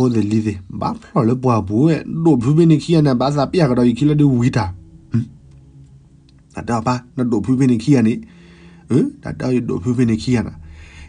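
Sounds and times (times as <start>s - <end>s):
person telling a story: 0.0s - 5.4s, 6.5s - 10.7s
faint background music: 0.0s - 11.0s.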